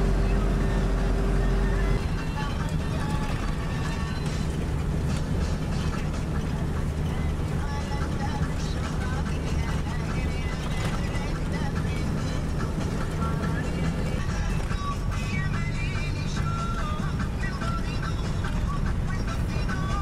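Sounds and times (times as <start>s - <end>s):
music playing: 0.0s - 20.0s
vehicle engine and road rumble: 0.0s - 20.0s.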